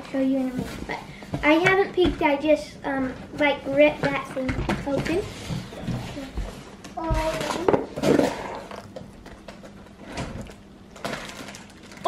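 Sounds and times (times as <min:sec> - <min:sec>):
plastic bag rustling: 0:09.9 - 0:12.0.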